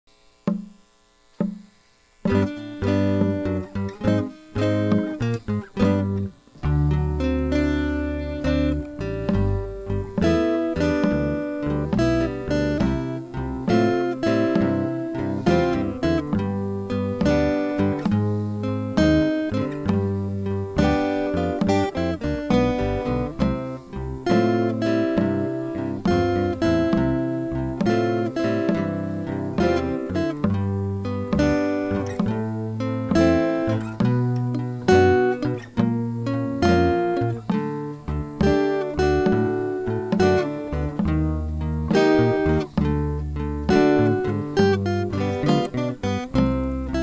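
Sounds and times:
acoustic guitar playing blues: 0.5s - 0.8s, 1.4s - 47.0s.

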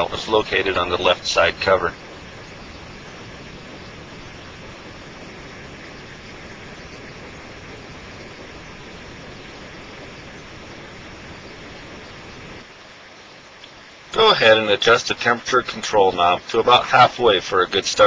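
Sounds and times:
steady background hiss: 0.0s - 18.0s.

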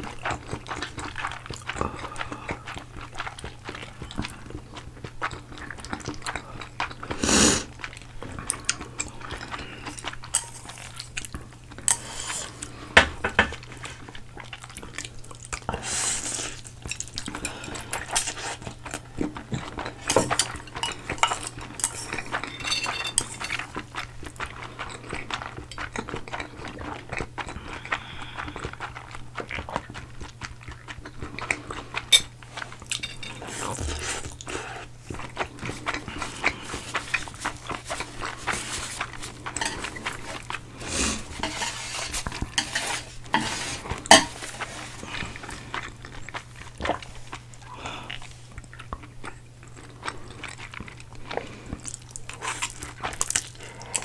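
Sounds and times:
slurping and chewing noodles: 0.0s - 13.0s, 13.6s - 54.0s.

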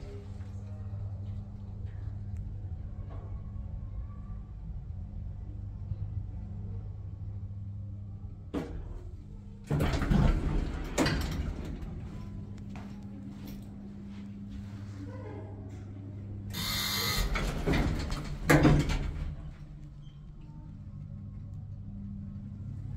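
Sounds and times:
elevator humming: 7.6s - 22.9s
elevator doors sliding open: 8.6s - 12.6s, 16.5s - 20.4s
elevator stopping click: 16.5s - 19.9s.

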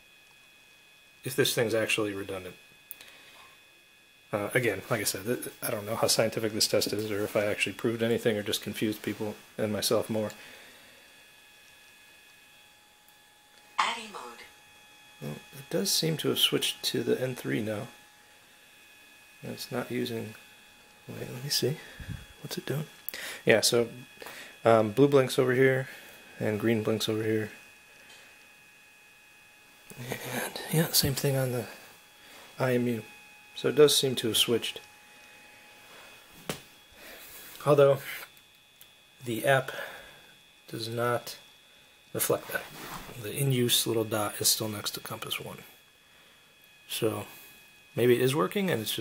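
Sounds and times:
faint high-pitched whine: 0.0s - 49.0s
faint steady high tones: 13.6s - 18.5s, 19.2s - 28.2s, 29.9s - 41.5s, 43.2s - 49.0s.

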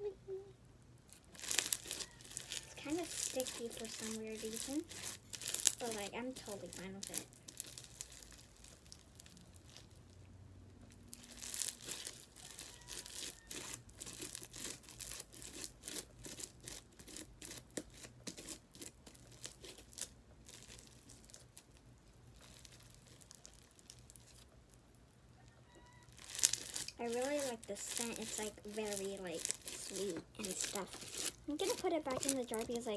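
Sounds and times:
slime squished by hand: 1.1s - 10.1s, 11.0s - 24.6s, 26.0s - 32.9s.

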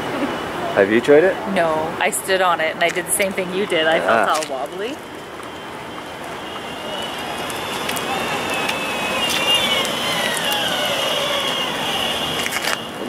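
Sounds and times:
wheels hissing on asphalt: 2.1s - 13.0s
electric motor whine: 3.4s - 13.0s.

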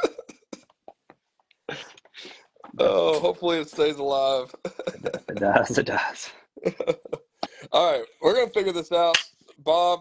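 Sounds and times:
man laughing: 4.5s - 5.7s, 6.6s - 7.4s.

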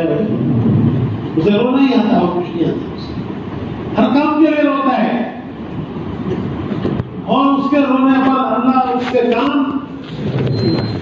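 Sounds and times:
steady rumbling background noise: 0.0s - 11.0s
man talking: 7.2s - 10.0s.

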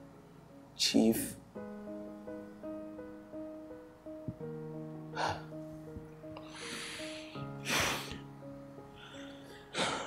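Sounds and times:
slow sad background music: 0.0s - 10.0s
person sniffling while crying: 6.5s - 8.2s.

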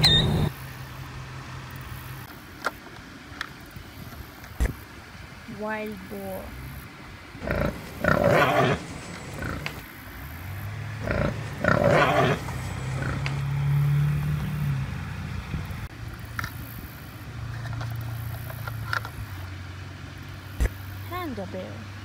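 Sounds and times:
wild boar calls: 7.4s - 9.8s, 11.0s - 14.7s.

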